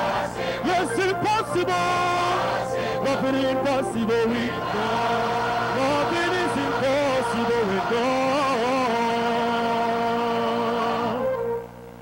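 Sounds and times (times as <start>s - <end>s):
gospel choir singing: 0.0s - 11.6s
electronic keyboards: 0.0s - 12.0s.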